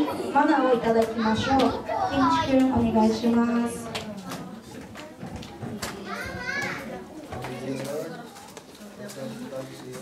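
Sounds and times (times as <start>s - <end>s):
children chattering and calling out: 0.0s - 10.0s
high child's voice: 1.2s - 2.7s, 6.0s - 7.0s.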